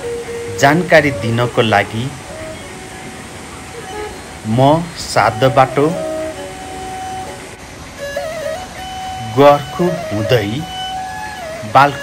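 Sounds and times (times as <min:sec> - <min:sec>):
river rushing: 0:00.0 - 0:12.0.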